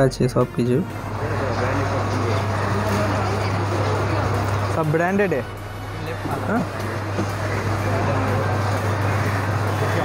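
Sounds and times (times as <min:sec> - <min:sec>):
steady low hum: 0:00.0 - 0:10.0
indistinct voices: 0:00.7 - 0:10.0.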